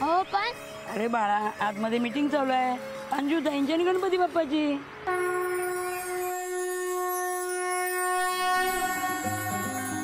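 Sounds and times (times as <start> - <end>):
conch shell blown: 5.0 - 10.0.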